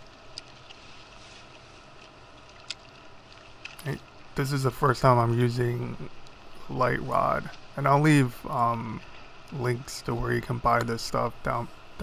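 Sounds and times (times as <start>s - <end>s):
faint ticks: 6.1s - 6.4s.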